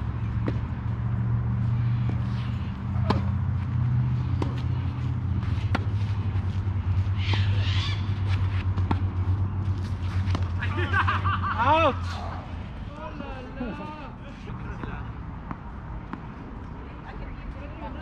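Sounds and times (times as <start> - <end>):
steady low hum: 0.0 - 13.8
tennis racket hitting ball: 2.0 - 3.4, 5.4 - 6.5.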